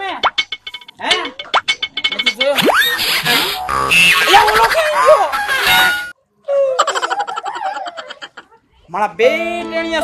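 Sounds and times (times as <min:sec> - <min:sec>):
short percussive strokes and notes: 0:00.0 - 0:04.8.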